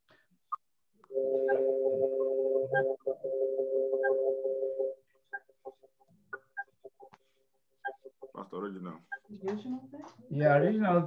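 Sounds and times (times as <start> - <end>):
garbled choppy blips: 5.0 - 10.1.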